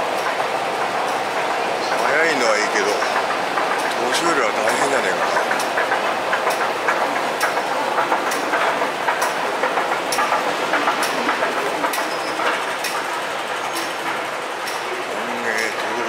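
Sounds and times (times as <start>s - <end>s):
station hubbub: 0.0s - 16.0s.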